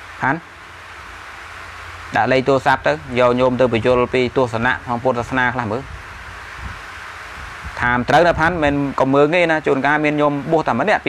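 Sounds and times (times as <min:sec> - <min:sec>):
steady background hiss: 0:00.0 - 0:11.0
man speaking: 0:00.2 - 0:00.4, 0:02.1 - 0:05.9, 0:07.8 - 0:11.0.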